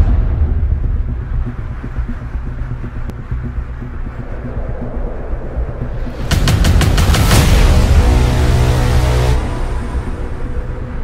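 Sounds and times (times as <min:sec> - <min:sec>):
deep low drone rumble: 0:00.0 - 0:11.0.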